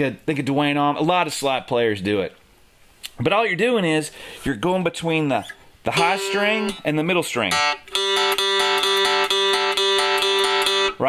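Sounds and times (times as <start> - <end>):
slide guitar picked strings: 5.4 - 11.0.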